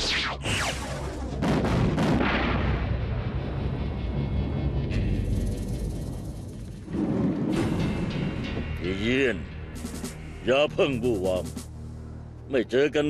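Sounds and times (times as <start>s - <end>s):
sharp hits: 0.0s - 10.4s, 11.0s - 11.8s
low explosive rumble: 0.8s - 8.8s
background music: 2.6s - 13.0s.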